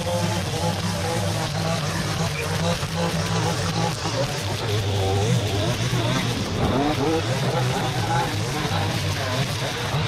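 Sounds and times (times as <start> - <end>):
gas string trimmers cutting weeds: 0.0 - 10.0.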